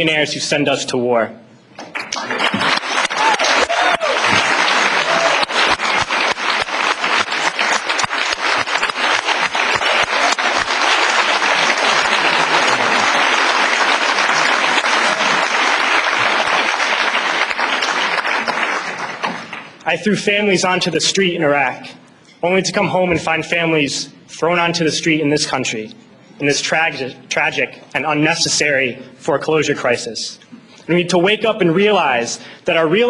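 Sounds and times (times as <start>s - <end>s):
large audience applauding: 1.8s - 19.8s.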